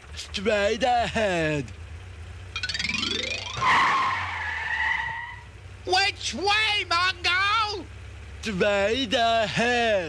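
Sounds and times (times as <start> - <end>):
rising whine: 2.6 - 4.3
loud tire screech: 3.5 - 5.6.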